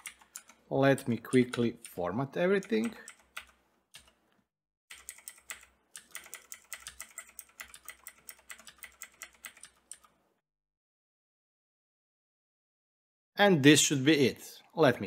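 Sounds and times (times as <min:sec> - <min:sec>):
computer keyboard typing: 0:00.0 - 0:04.2, 0:04.9 - 0:10.2.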